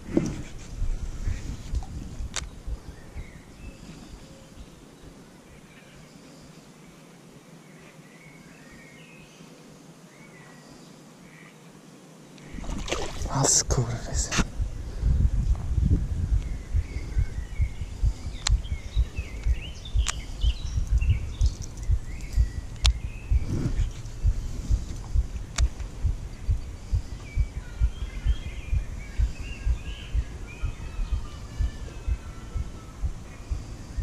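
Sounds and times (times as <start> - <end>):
thumping on microphone: 0.0 - 3.3, 14.3 - 34.0
small birds chirping: 0.0 - 34.0
sharp clicks: 1.7 - 2.5, 18.4 - 18.6, 19.4 - 23.0, 24.9 - 25.9.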